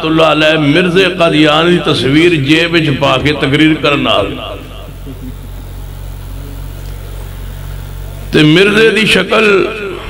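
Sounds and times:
man's amplified voice: 0:00.0 - 0:05.0, 0:08.3 - 0:10.0
low electrical hum: 0:00.0 - 0:10.0.

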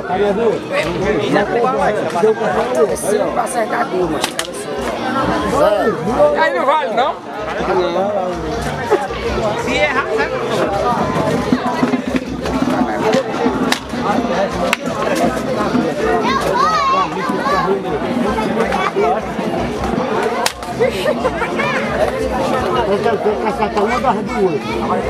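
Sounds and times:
babble of voices: 0:00.0 - 0:25.0.

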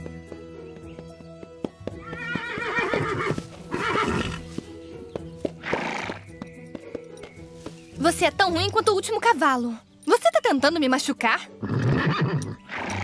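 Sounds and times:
hooves striking ground: 0:00.0 - 0:10.9
background music: 0:00.0 - 0:13.0
horse whinnying: 0:02.0 - 0:04.5, 0:05.6 - 0:06.2, 0:11.6 - 0:13.0
horse snorting: 0:02.2 - 0:04.6, 0:05.6 - 0:06.3, 0:11.6 - 0:13.0.

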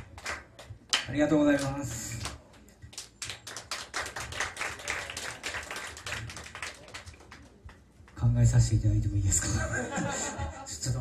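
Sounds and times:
audience clapping: 0:00.0 - 0:08.3.

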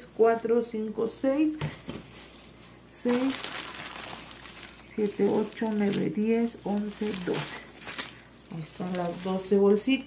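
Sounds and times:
plastic bags crinkling: 0:03.0 - 0:10.0.

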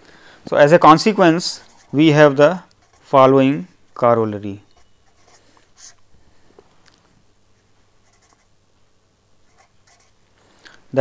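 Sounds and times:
pen scratching on paper: 0:01.6 - 0:02.2, 0:02.8 - 0:03.2, 0:04.7 - 0:06.0, 0:08.0 - 0:08.5, 0:09.5 - 0:10.2.

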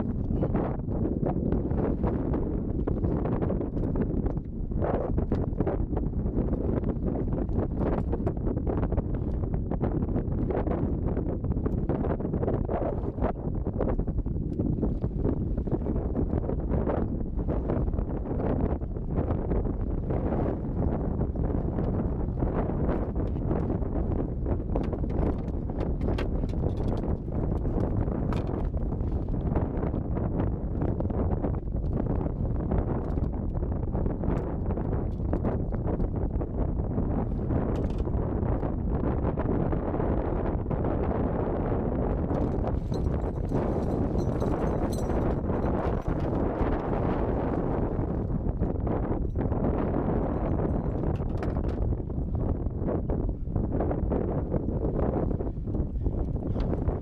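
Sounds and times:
wind buffeting microphone: 0:00.0 - 0:57.0
water lapping against boat hull: 0:22.9 - 0:29.9, 0:42.4 - 0:48.6.

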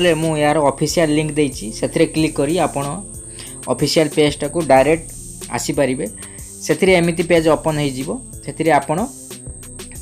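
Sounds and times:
man narrating: 0:00.0 - 0:09.3.

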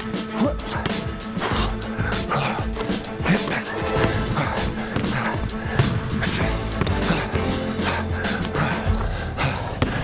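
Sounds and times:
music with a steady beat: 0:00.0 - 0:08.9
basketball bouncing on hardwood floor: 0:04.9 - 0:06.1, 0:06.8 - 0:07.1, 0:09.8 - 0:10.0.

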